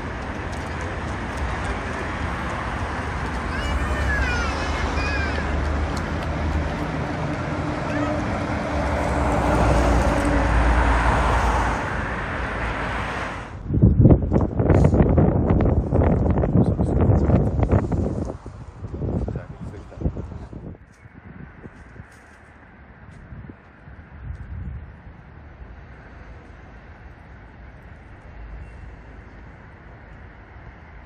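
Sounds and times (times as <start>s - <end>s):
wind buffeting microphone: 0.0s - 28.3s
street traffic: 0.0s - 31.0s
indistinct voices: 3.2s - 6.1s.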